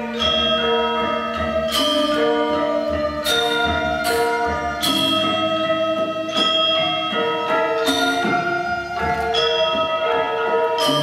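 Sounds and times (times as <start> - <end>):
gamelan metallophone music: 0.0 - 11.0.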